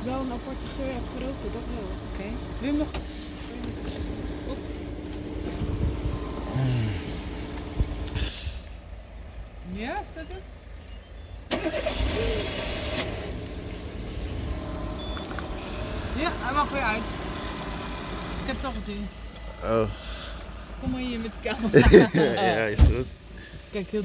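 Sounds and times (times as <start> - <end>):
car engine running: 0.0 - 24.0
engine cranking: 10.7 - 18.8.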